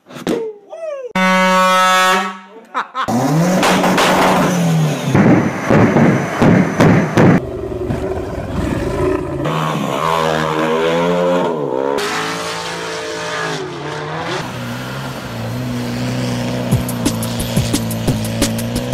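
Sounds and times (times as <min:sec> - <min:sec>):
car engines revving: 0:03.1 - 0:18.9
sharp bangs: 0:03.3 - 0:07.5.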